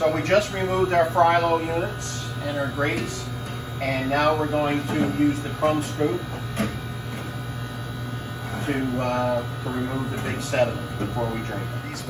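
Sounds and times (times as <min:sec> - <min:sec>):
kitchen equipment hum: 0:00.0 - 0:12.0.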